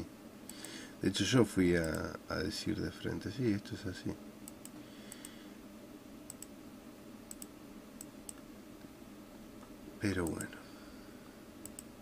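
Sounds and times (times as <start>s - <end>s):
steady low hum: 0.0s - 12.0s
computer mouse clicking: 4.4s - 5.4s, 6.3s - 6.5s, 7.3s - 8.5s, 10.2s - 10.5s, 11.6s - 11.9s.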